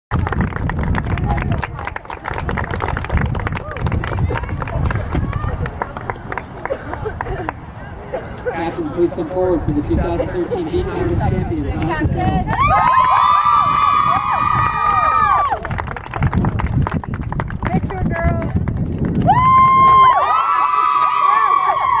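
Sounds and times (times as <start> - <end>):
people chattering: 1.1 - 12.6.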